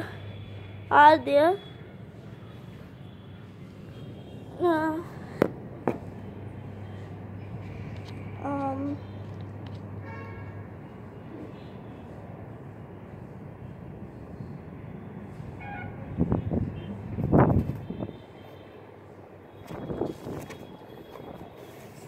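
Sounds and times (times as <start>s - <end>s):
wind buffeting microphone: 16.1s - 18.1s.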